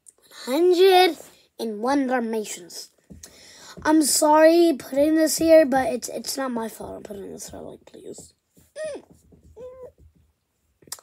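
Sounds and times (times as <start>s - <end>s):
child humming: 8.8s - 10.0s.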